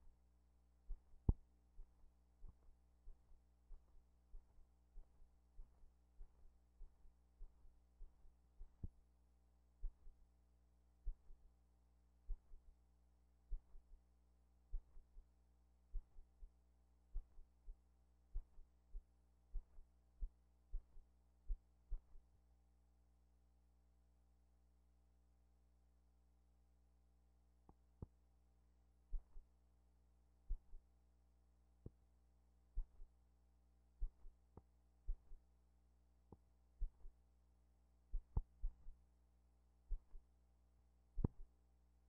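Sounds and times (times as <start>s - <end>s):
faint steady hum: 0.0s - 42.0s.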